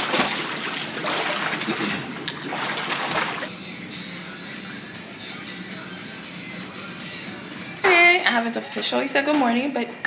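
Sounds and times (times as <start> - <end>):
swimmer splashing in a pool: 0.0 - 3.5.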